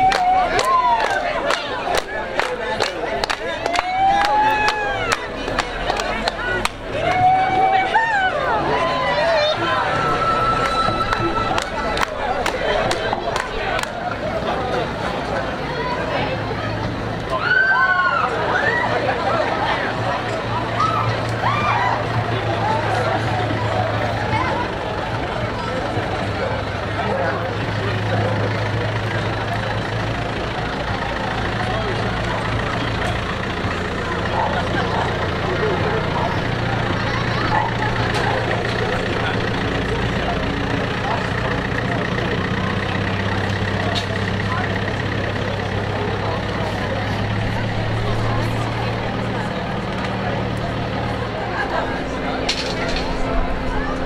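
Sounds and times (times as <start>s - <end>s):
pickup truck engine running: 0.0s - 17.4s, 18.0s - 54.0s
chatter of a crowd: 0.0s - 54.0s.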